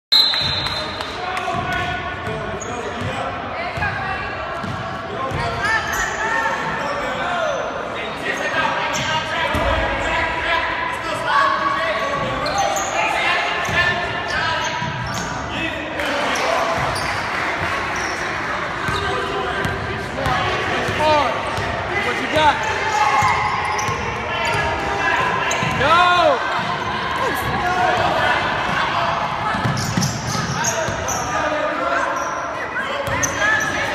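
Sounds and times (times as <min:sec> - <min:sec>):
sneakers squeaking: 0:00.1 - 0:07.1, 0:12.0 - 0:15.5, 0:16.2 - 0:28.0, 0:28.7 - 0:33.9.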